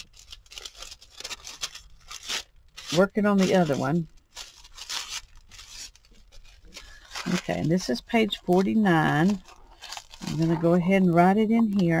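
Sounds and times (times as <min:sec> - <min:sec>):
parchment paper rustling: 0:00.0 - 0:12.0.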